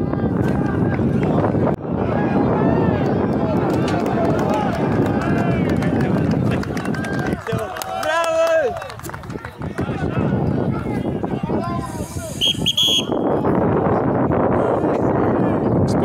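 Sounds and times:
crowd shouting and cheering: 0:00.0 - 0:16.0
loud shout: 0:06.8 - 0:09.0
short high whistle blast: 0:12.3 - 0:13.2.

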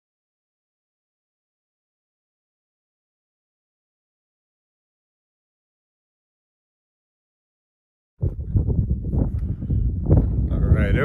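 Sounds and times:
wind buffeting microphone: 0:08.2 - 0:11.0.

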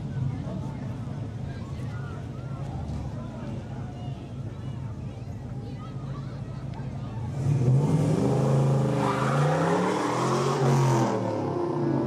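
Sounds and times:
pickup engine revving: 0:07.4 - 0:12.0.

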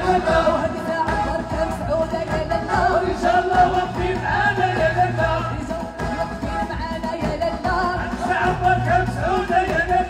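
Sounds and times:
hand-beaten frame drums: 0:00.0 - 0:10.0
woman singing through microphone: 0:00.0 - 0:10.0.

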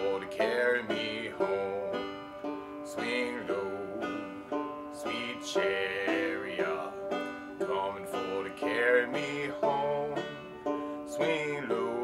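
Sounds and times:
banjo picking: 0:00.0 - 0:12.0.

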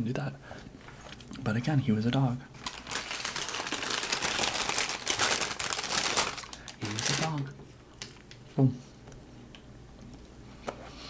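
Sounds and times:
crumbly food crinkling and crackling: 0:02.6 - 0:08.5.

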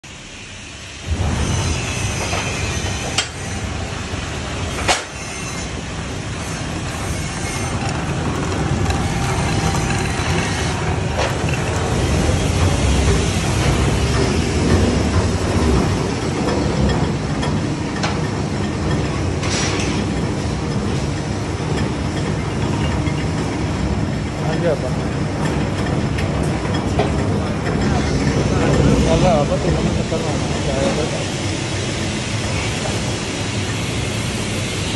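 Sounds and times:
sifter motor rumbling: 0:05.6 - 0:34.9.

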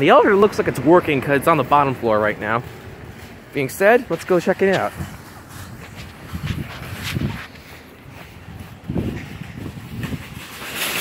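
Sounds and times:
footsteps on pavement: 0:00.0 - 0:11.0
outdoor background noise: 0:00.0 - 0:11.0.

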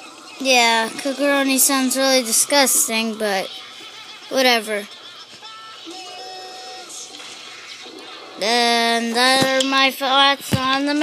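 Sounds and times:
cartoon music from television: 0:00.0 - 0:11.0.

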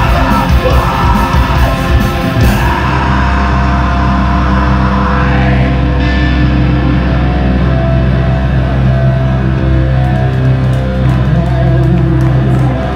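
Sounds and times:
distorted guitars and bass chord: 0:00.0 - 0:12.9
heavy rock band playing: 0:00.0 - 0:12.9.

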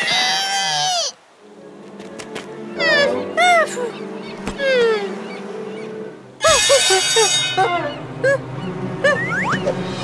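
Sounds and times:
quiet background music: 0:01.3 - 0:10.0.

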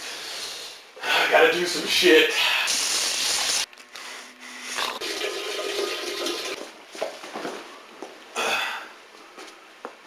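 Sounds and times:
toilet flushing: 0:05.0 - 0:06.6.

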